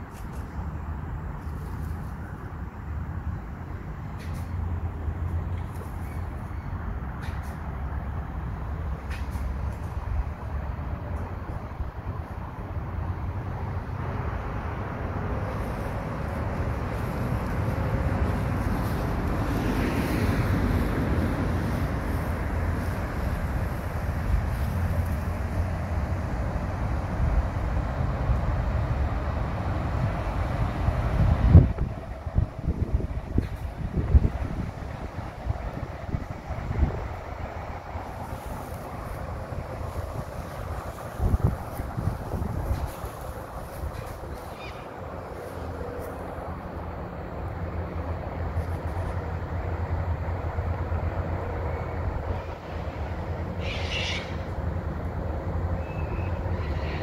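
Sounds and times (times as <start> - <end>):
low outdoor rumble: 0.0 - 57.0.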